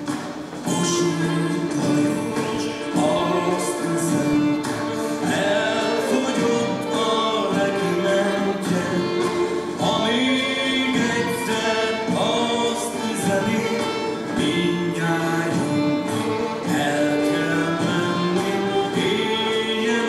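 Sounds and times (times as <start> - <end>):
group of voices singing: 0.6 - 20.0.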